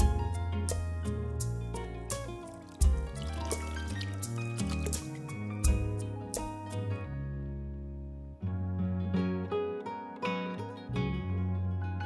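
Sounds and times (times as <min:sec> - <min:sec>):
instrumental film music: 0:00.0 - 0:12.0
liquid trickling into water: 0:02.1 - 0:05.9.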